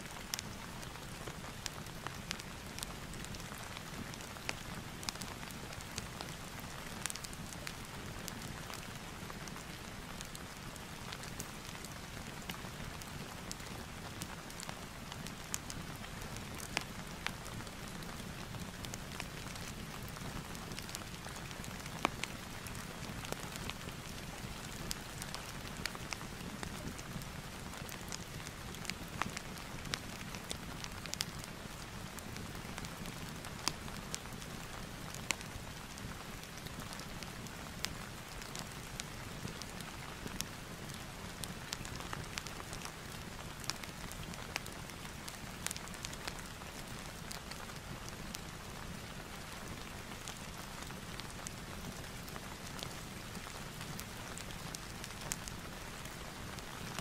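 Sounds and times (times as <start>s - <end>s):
crackling fireplace: 0.0s - 57.0s
steady rain: 0.0s - 57.0s.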